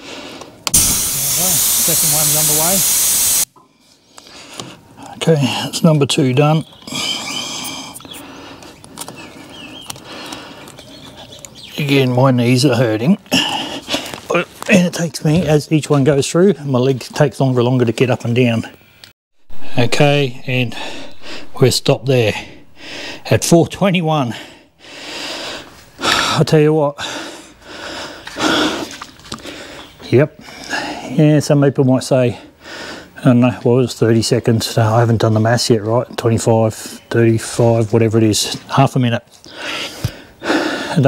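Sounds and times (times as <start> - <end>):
man breathing heavily: 0.0 - 0.6, 6.9 - 10.8, 13.3 - 14.3, 20.6 - 21.6, 22.3 - 23.4, 24.2 - 31.1, 32.4 - 33.2, 39.4 - 41.0
air hissing from tyre valve: 0.7 - 3.5.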